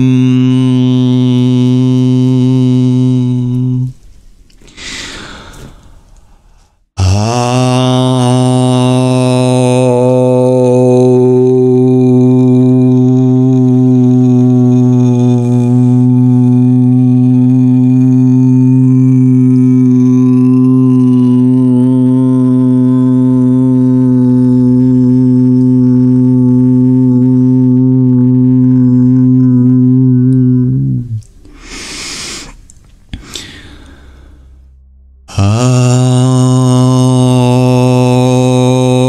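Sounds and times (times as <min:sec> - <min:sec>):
man humming low om: 0:00.0 - 0:04.0, 0:07.0 - 0:39.0.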